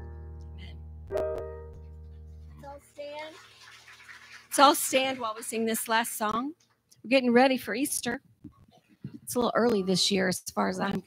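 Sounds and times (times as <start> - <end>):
electric keyboard chord: 0.0 - 2.6.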